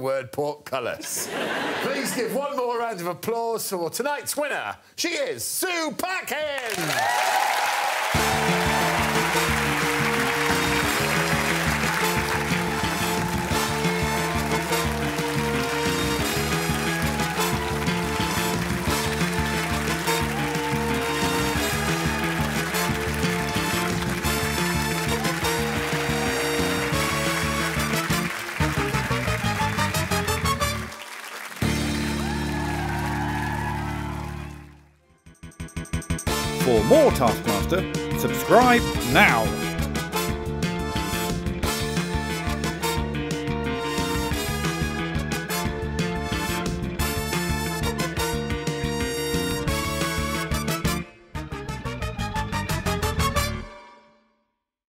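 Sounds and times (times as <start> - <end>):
applause: 6.4 - 34.9
theme music with steady beat: 8.1 - 33.1, 35.2 - 53.9.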